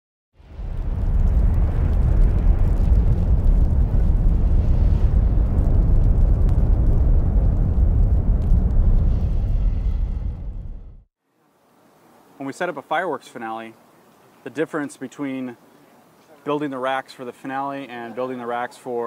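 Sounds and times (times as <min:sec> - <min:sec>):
faint crackles: 0:00.4 - 0:10.0, 0:13.6 - 0:14.6
rumbling fiery roar: 0:00.4 - 0:11.1.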